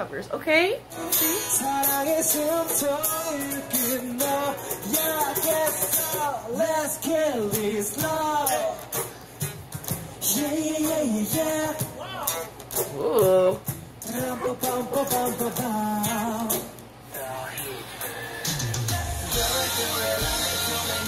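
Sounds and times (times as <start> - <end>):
acoustic guitar: 0.8 - 21.0
men singing: 1.1 - 9.0, 10.2 - 12.5, 14.0 - 21.0.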